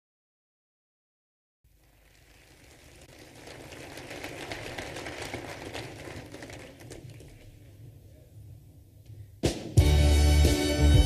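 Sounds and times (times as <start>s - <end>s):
audience applause: 1.8s - 7.7s.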